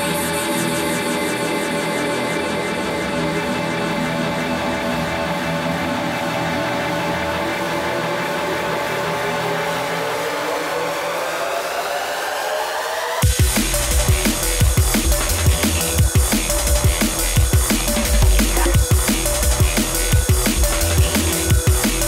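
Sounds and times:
sustained layered synth chords: 0.0s - 22.0s.

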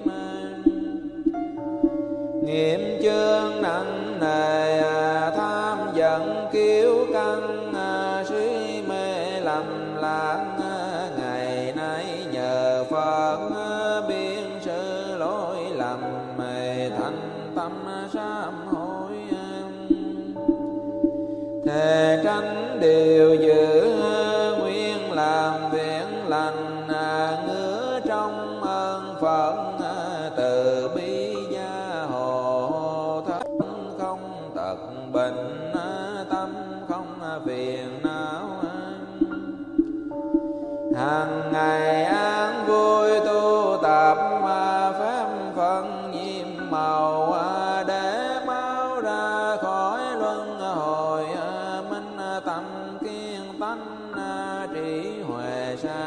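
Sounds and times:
melodic chanting voice: 0.0s - 56.0s.

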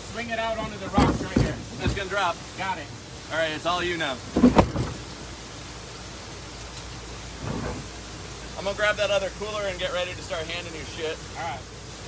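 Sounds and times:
rushing water: 0.0s - 12.0s
canoe hull knocking on rocks: 0.6s - 2.4s, 4.3s - 5.1s.

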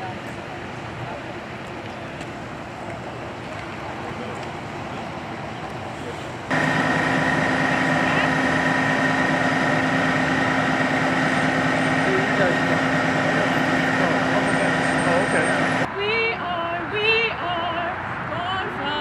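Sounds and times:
truck engine idling: 5.9s - 15.9s
high whine: 6.5s - 15.9s.

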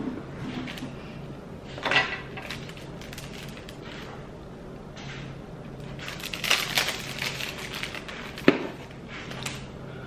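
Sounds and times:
plastic packet crinkling: 2.4s - 4.1s, 5.8s - 9.6s.

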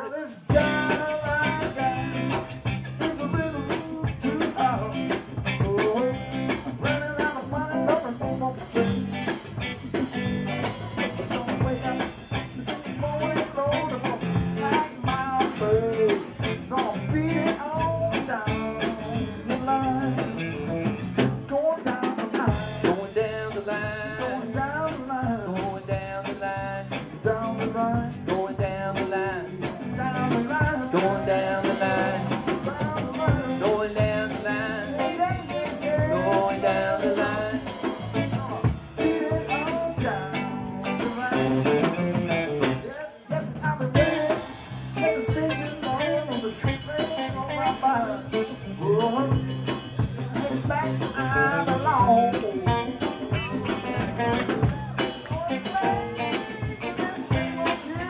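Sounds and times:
live rock band playing: 0.4s - 58.0s.

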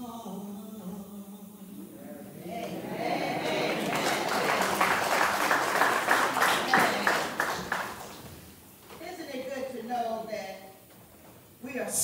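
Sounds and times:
congregation applauding: 2.2s - 8.5s.

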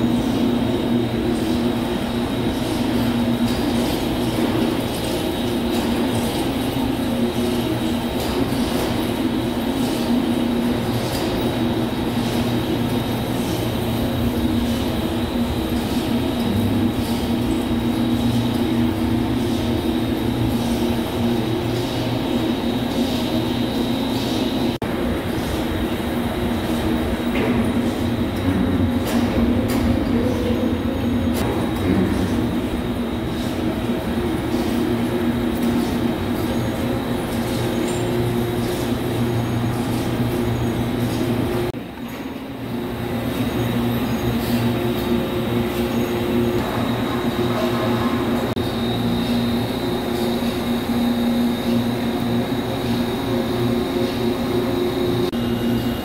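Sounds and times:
machinery humming: 0.0s - 56.0s.

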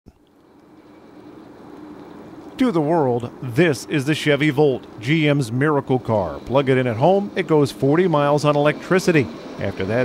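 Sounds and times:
mechanical hum: 0.1s - 10.0s.

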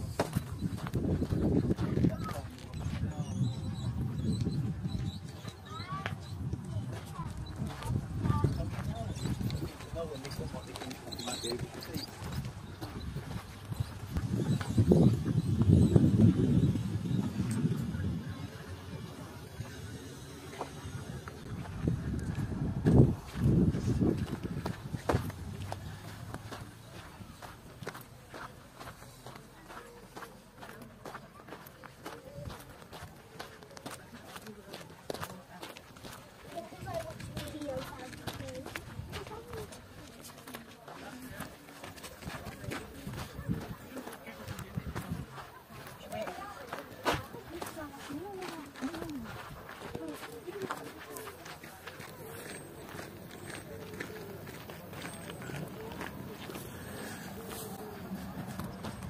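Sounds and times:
footsteps on gravel: 0.0s - 3.2s, 5.9s - 15.8s, 20.5s - 59.0s
faint voices: 0.0s - 59.0s.

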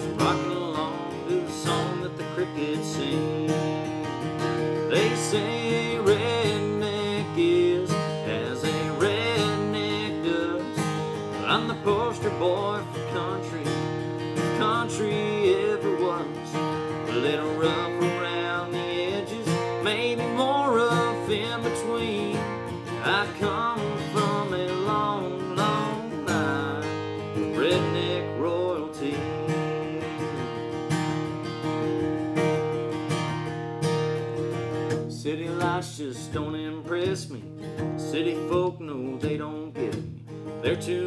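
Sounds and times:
acoustic guitar strumming: 0.0s - 41.0s
man singing country song: 0.0s - 41.0s.

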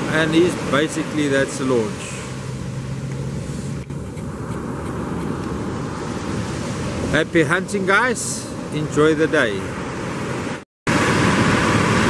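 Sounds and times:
low engine hum: 0.0s - 7.5s, 8.4s - 12.0s
surf and wind: 0.0s - 12.0s.

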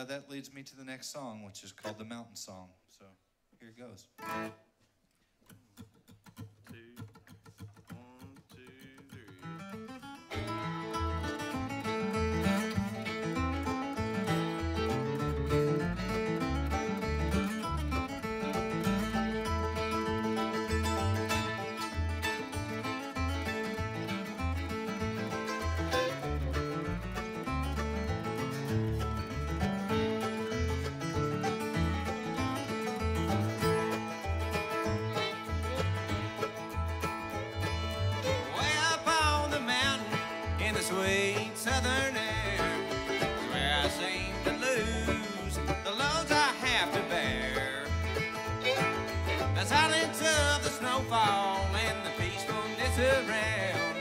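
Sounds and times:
bluegrass band playing: 4.2s - 4.6s, 9.4s - 54.0s
upright bass beat: 10.3s - 54.0s.

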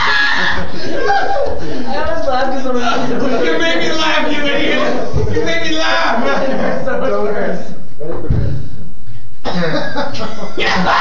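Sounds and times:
young men laughing: 0.0s - 7.2s, 9.5s - 11.0s
man shouting: 3.4s - 6.5s, 10.6s - 11.0s
coughing: 9.4s - 11.0s.

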